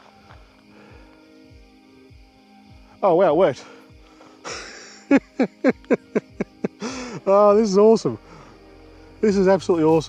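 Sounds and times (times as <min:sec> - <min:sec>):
man laughing: 0:04.4 - 0:07.6.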